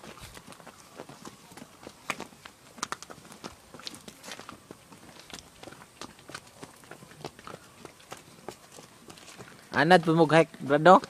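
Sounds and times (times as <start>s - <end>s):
footsteps crunching on gravel: 0.0s - 11.0s.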